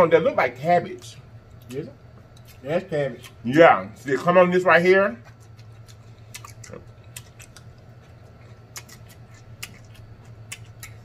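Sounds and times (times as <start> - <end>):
low steady hum: 0.0 - 11.0
person chewing food: 5.2 - 11.0.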